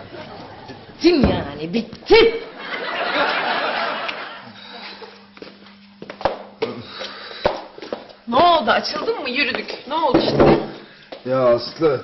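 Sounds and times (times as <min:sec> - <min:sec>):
footsteps on wooden floor: 0:07.0 - 0:11.3.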